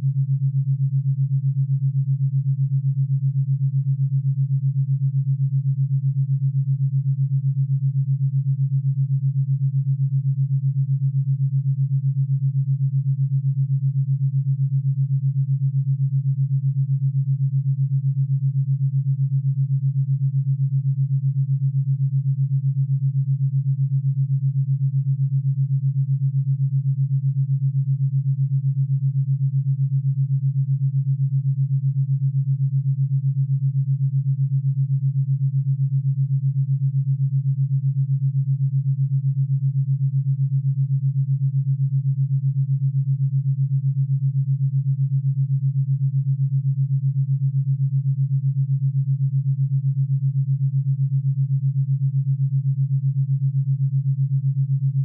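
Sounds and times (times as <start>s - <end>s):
pulsing low hum: 0.0s - 55.0s.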